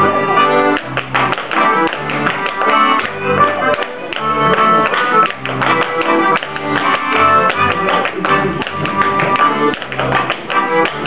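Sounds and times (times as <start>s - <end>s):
accordion playing dance tune: 0.0s - 11.0s.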